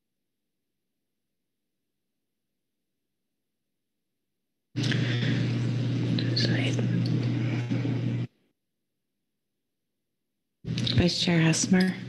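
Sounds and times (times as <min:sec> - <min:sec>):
low electrical hum: 0:04.8 - 0:08.3, 0:10.7 - 0:12.0.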